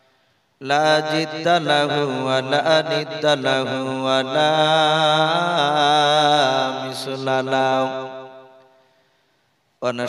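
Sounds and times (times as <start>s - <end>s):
man chanting through microphone: 0.6s - 8.6s.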